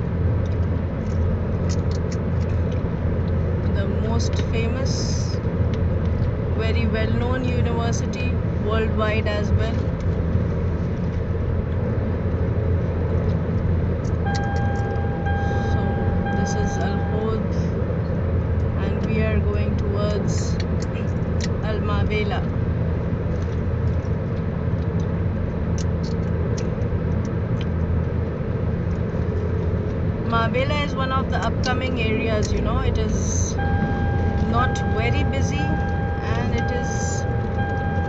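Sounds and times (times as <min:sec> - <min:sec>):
car road and engine rumble: 0:00.0 - 0:38.0
steady single-pitched tone: 0:14.2 - 0:17.5, 0:33.4 - 0:38.0.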